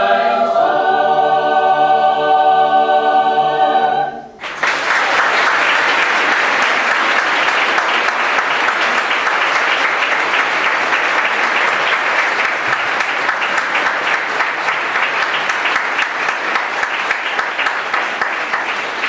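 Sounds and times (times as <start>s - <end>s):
choir holding a chord: 0.0s - 4.4s
audience applause: 4.4s - 19.0s.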